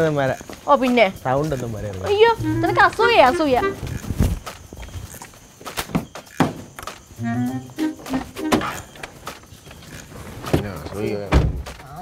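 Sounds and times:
high voice speaking: 2.3s - 3.8s.

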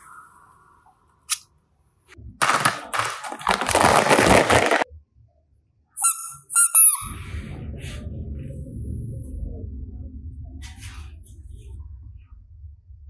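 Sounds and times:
plastic toys rustling and scraping: 2.4s - 4.9s
short high squeaks: 6.0s - 7.1s.

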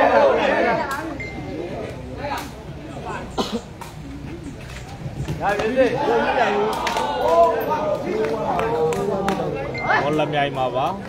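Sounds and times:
spectators' voices: 0.0s - 11.0s.

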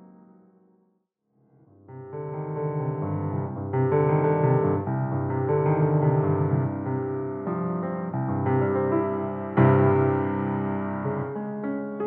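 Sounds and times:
grand piano chords: 1.9s - 12.0s.

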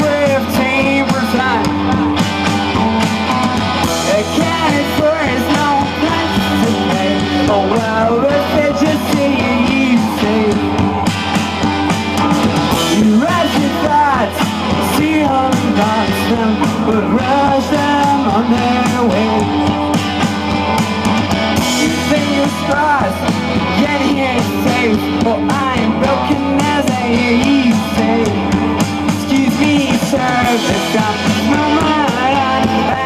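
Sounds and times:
man singing: 0.0s - 33.0s
rock band playing live: 0.0s - 33.0s.

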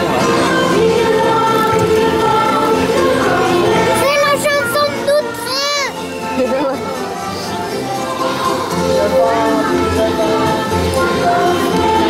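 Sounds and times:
background music: 0.0s - 12.0s
choir singing long notes: 0.0s - 12.0s.

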